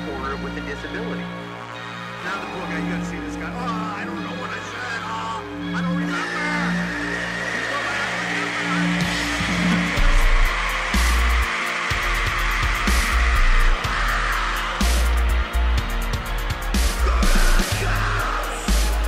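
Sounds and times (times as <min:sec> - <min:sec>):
distorted droning intro: 0:06.7 - 0:19.0
heavy bass and drums: 0:09.0 - 0:19.0.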